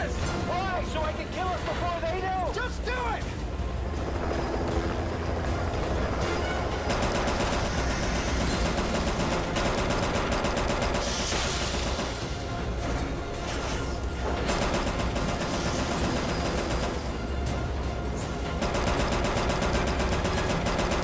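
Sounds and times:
film score: 0:00.0 - 0:21.0
rapid rattling clicks: 0:06.8 - 0:12.4, 0:18.6 - 0:21.0.

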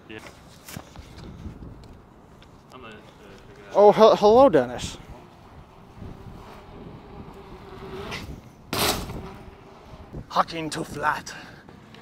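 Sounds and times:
bike tyres humming on concrete: 0:00.2 - 0:12.0
bike landing impact: 0:06.4 - 0:09.7.

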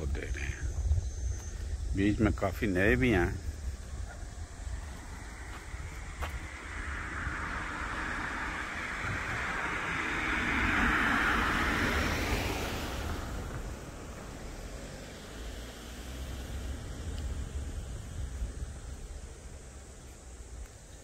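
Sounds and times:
wind rumbling on microphone: 0:00.0 - 0:21.0
vehicle passing by: 0:02.9 - 0:20.0.

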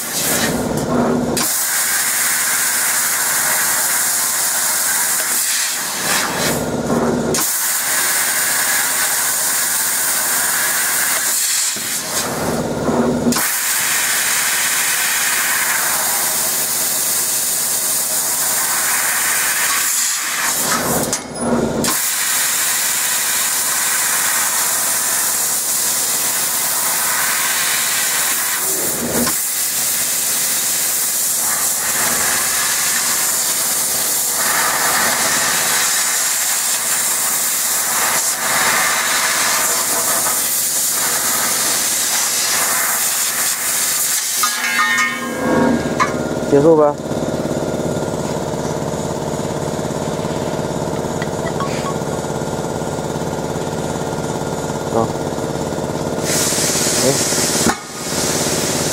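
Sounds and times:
laser cutter assist gas hissing: 0:00.0 - 0:48.1, 0:56.1 - 0:58.9.

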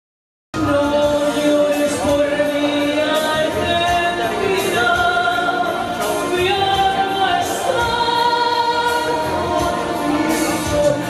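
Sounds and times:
musical accompaniment: 0:00.6 - 0:11.0
woman singing into microphone: 0:00.6 - 0:11.0.

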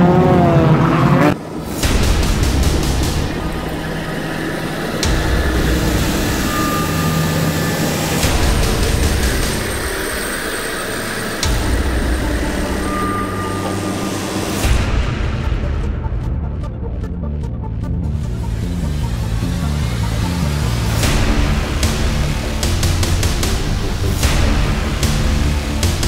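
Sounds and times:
heavy equipment engines running: 0:00.0 - 0:26.0.

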